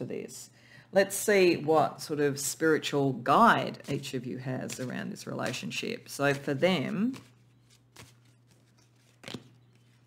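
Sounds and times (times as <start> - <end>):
cards being handled: 3.8 - 10.0.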